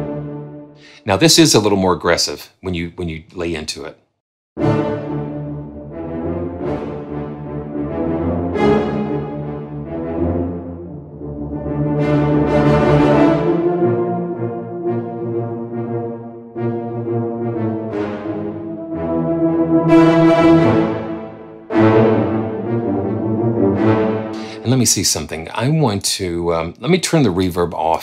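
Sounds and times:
brass ensemble staccato chords: 0.0s - 1.5s, 4.6s - 26.6s.

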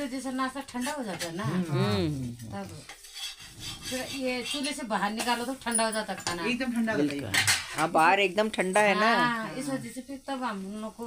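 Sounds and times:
metal utensils scraping iron griddle: 0.5s - 1.5s, 2.7s - 6.7s, 7.3s - 8.0s.

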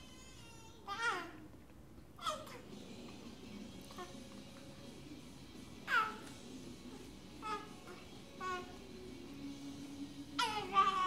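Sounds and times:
baby squealing: 5.9s - 6.3s, 7.4s - 8.8s.

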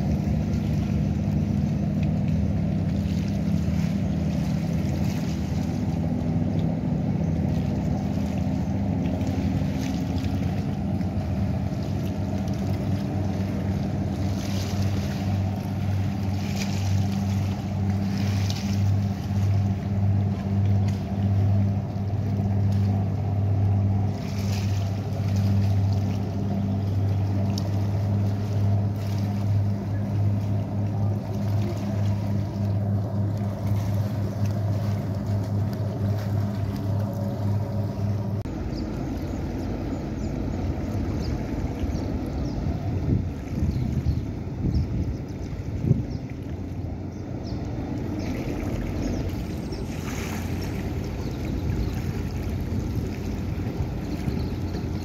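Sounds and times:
boat engine droning: 0.0s - 55.0s
water noise: 0.0s - 55.0s
wind noise: 41.1s - 46.3s.

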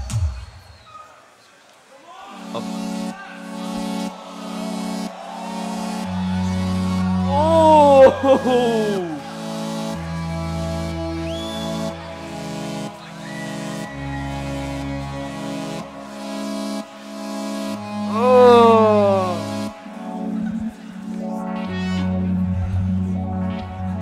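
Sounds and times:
held vocal bass line: 7.0s - 9.3s, 18.0s - 19.6s.

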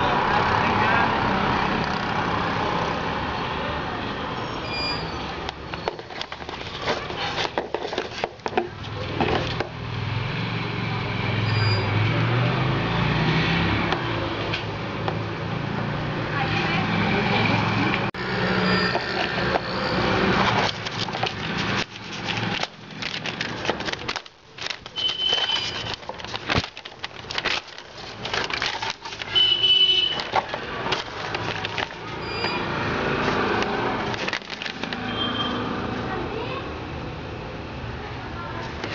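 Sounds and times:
paper receipt crackling and rustling: 5.8s - 9.6s, 18.9s - 35.3s
cardboard box handling: 5.8s - 9.7s, 20.3s - 32.5s.

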